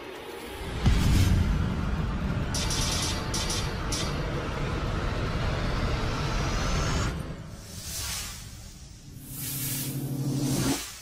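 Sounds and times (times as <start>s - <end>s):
swoosh: 0.4s - 11.0s
low cinematic drone: 0.5s - 7.8s.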